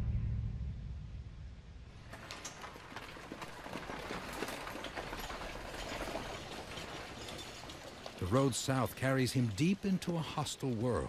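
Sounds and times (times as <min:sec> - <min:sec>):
horse hooves clip-clopping: 0:02.1 - 0:11.0.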